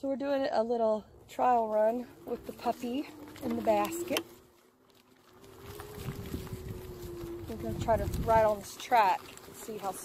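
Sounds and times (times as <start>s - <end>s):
wind rumbling on microphone: 5.3s - 10.0s.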